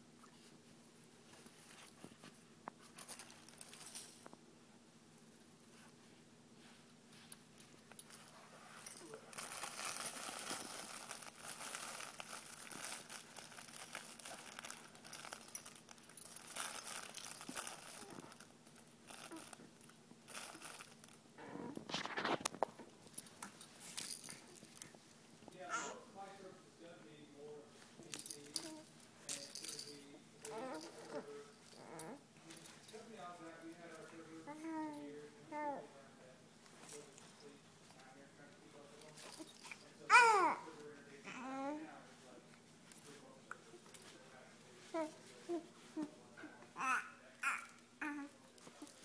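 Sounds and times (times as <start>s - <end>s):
plush toy fabric crinkling: 8.0s - 26.0s, 27.7s - 34.2s
baby cooing: 25.7s - 26.1s, 30.4s - 32.2s, 40.1s - 41.8s, 46.8s - 48.4s.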